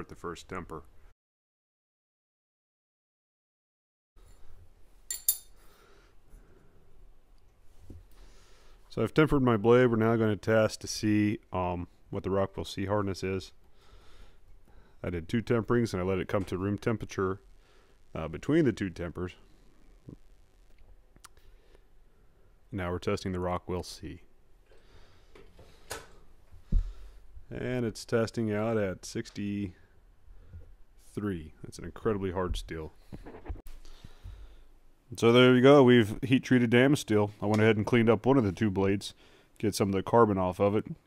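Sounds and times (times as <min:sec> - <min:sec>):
knife blade clinking on metal: 0:05.1 - 0:05.6.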